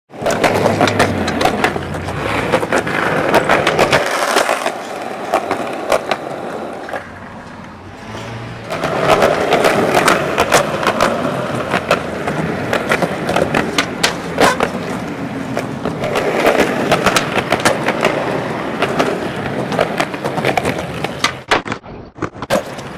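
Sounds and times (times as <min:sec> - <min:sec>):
skateboard clacks: 0:00.1 - 0:22.9
skateboard wheels rolling on concrete: 0:00.1 - 0:22.9.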